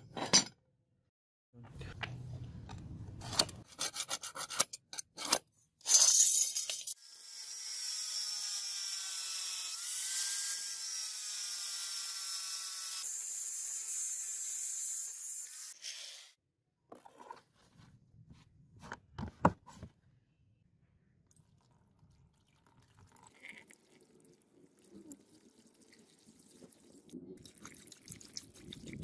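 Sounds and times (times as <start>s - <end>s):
angle grinder cutting steel: 6.8s - 15.8s.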